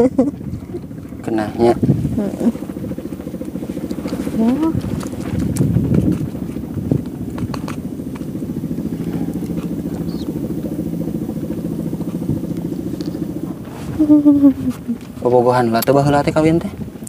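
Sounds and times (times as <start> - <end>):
small engine running: 0.0 - 17.0.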